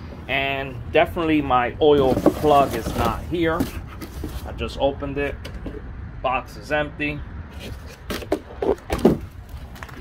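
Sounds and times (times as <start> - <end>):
cardboard box scraping and rustling: 1.9 - 4.6, 7.5 - 9.4.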